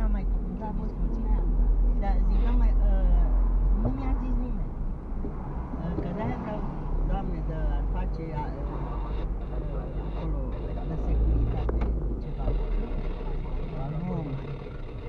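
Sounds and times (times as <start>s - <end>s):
car road and engine rumble: 0.0s - 15.0s
indistinct voices talking: 0.0s - 15.0s.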